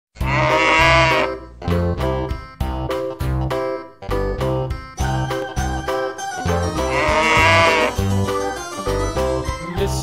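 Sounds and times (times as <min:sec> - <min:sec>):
cow mooing: 0:00.2 - 0:01.4, 0:06.8 - 0:08.1
backing music: 0:00.2 - 0:10.0.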